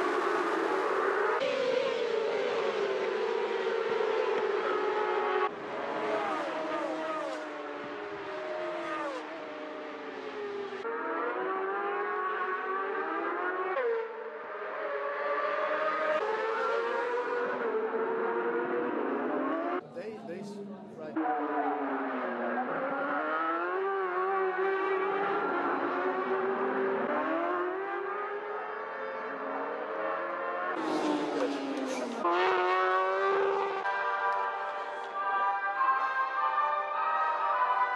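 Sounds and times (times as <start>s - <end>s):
racing motorcycles revving: 0.0s - 37.9s
motorcycle engine at high revs: 29.4s - 34.5s.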